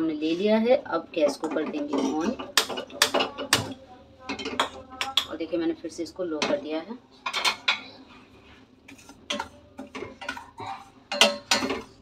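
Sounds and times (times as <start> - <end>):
wooden spoon scraping a pan: 7.8 - 12.0.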